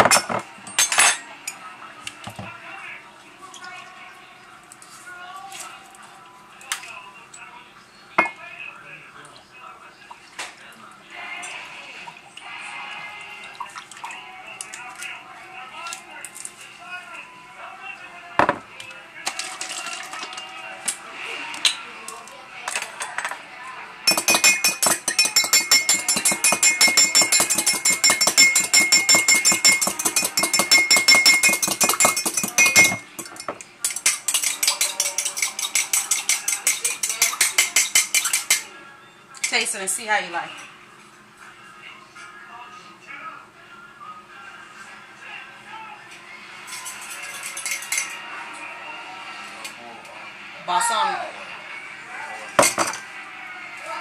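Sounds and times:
fork whisking in glass cup: 0:24.1 - 0:38.7.

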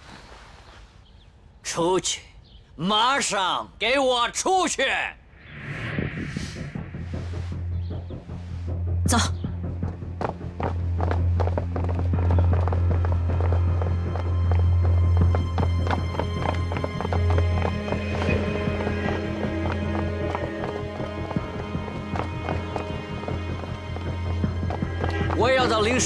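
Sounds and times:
dramatic film score drone: 0:05.2 - 0:26.0.

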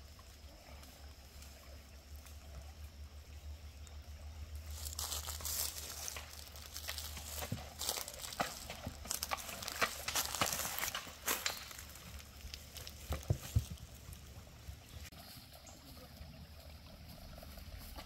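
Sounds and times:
footsteps crunching dry leaves: 0:04.5 - 0:14.3.

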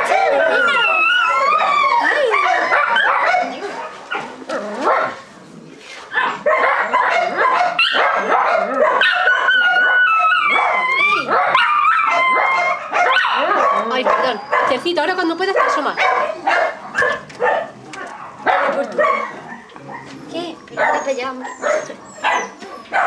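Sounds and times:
puppy yelping and whining: 0:00.0 - 0:05.3, 0:06.1 - 0:23.0.

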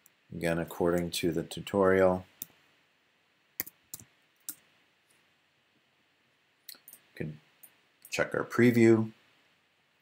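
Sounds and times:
keyboard and mouse clicks: 0:03.6 - 0:04.6.

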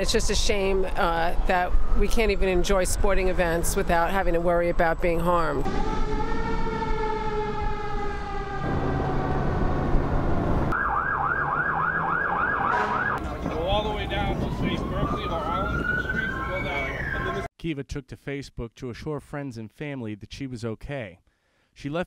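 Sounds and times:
fire engine siren: 0:05.6 - 0:17.5
siren wail rising: 0:05.6 - 0:17.5
yelp siren warbling: 0:05.6 - 0:17.5.

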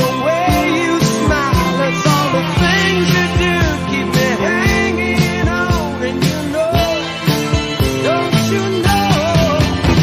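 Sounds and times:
blues-rock band playing: 0:00.0 - 0:10.0
steady drum beat: 0:00.0 - 0:10.0.

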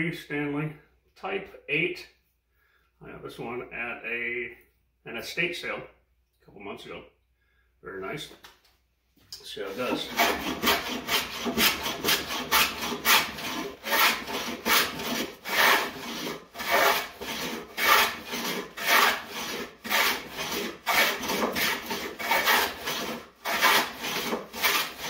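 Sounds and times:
hand plane shaving wood: 0:09.6 - 0:25.0.

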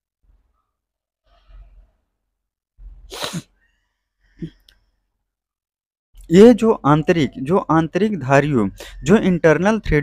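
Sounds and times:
person sneezing: 0:03.1 - 0:03.6.

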